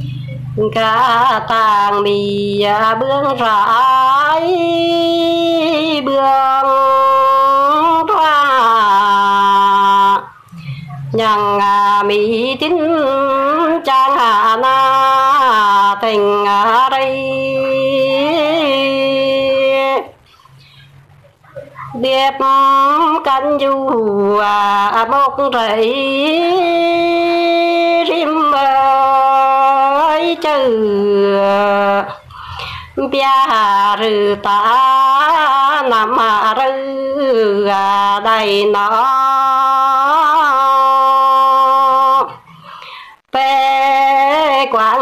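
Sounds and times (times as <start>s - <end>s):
woman singing unaccompanied: 0.0s - 20.4s, 21.7s - 42.7s, 43.3s - 45.0s.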